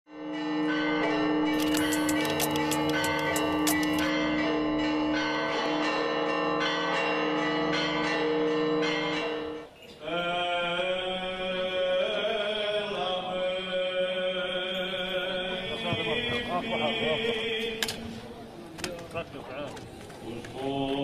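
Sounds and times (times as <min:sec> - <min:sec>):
church bells ringing: 0:00.1 - 0:10.2.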